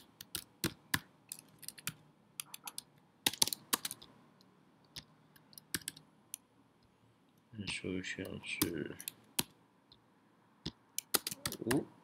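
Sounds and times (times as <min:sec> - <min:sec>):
computer keyboard typing: 0:00.0 - 0:04.1, 0:04.9 - 0:06.0, 0:11.0 - 0:11.9.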